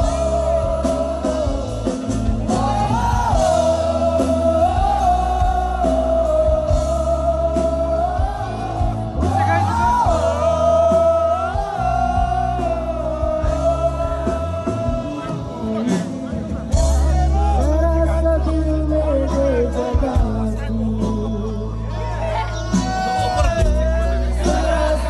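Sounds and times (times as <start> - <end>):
bass guitar: 0.0 - 25.0
drums: 0.0 - 25.0
keyboard: 0.0 - 25.0
woman singing lead: 0.0 - 25.0.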